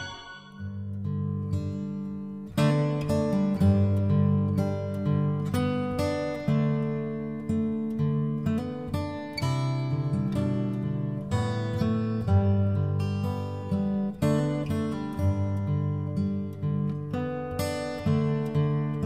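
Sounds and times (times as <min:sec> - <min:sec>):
acoustic guitar playing: 0:00.0 - 0:19.0.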